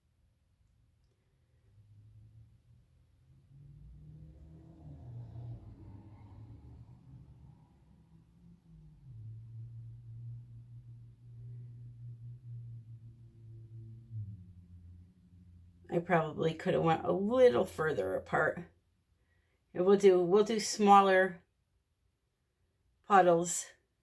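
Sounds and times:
quiet low held tones: 0.0 - 20.2.

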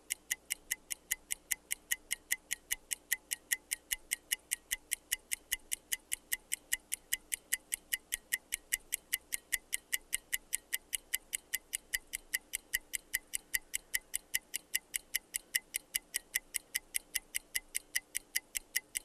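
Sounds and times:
fast clock ticking: 0.0 - 19.0.

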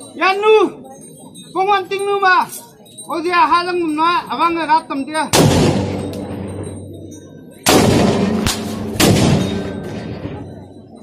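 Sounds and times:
gunshot cracking and ringing: 5.4 - 6.2, 7.7 - 10.0.

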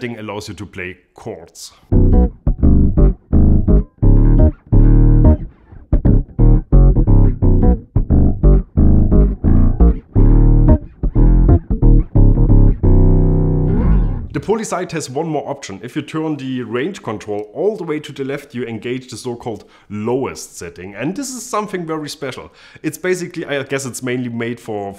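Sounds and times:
electric bass with octave effect: 1.9 - 14.4.

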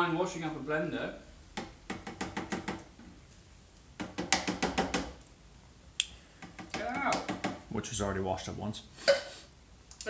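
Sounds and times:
tin can clicking and knocking: 4.0 - 5.2, 6.4 - 7.7.

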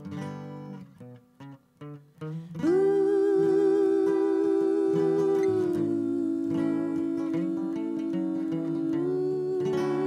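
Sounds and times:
acoustic guitar: 0.0 - 10.0
woman singing a long note: 2.6 - 10.0.

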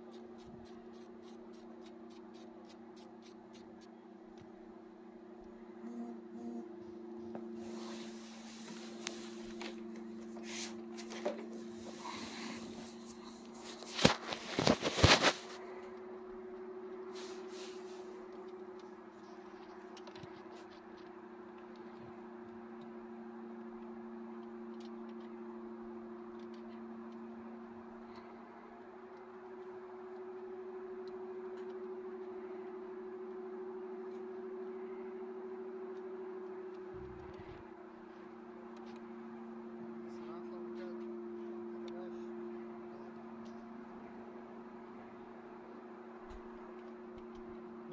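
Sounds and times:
droning two-tone hum: 0.0 - 47.9.

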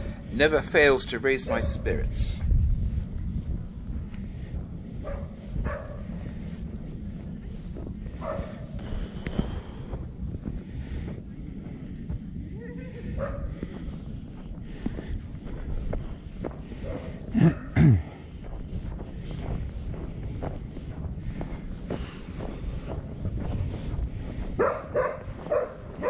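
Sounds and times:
low rumble of walking: 0.0 - 26.0
person breathing hard: 4.2 - 26.0.

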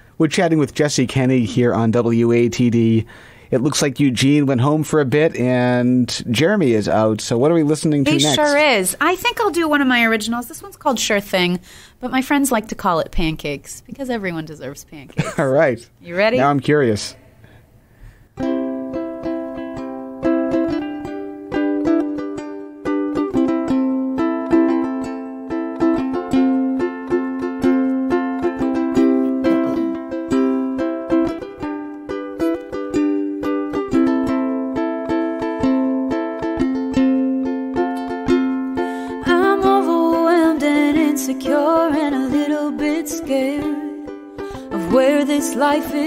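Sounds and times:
acoustic guitar strumming: 8.0 - 9.8, 18.4 - 46.0
woman singing: 8.1 - 8.8, 38.9 - 46.0.

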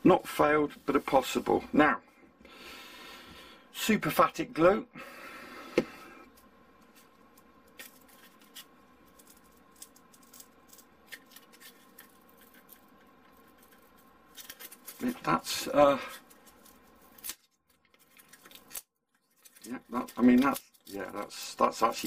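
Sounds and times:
foam sheet ticks and scratches: 7.7 - 22.0.

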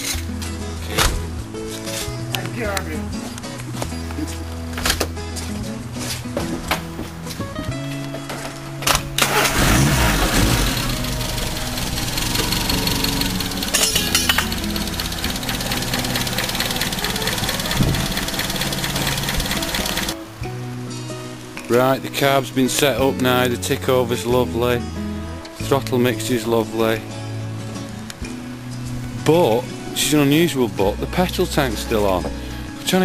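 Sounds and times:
background music: 0.0 - 33.0
car engine starting and idling: 8.9 - 20.2.

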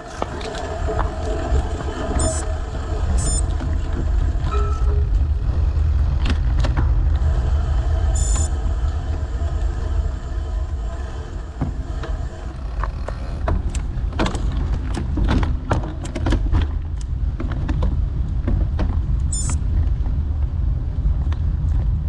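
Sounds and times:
wheels rolling over asphalt: 0.0 - 22.0
wind on microphone: 0.0 - 22.0.

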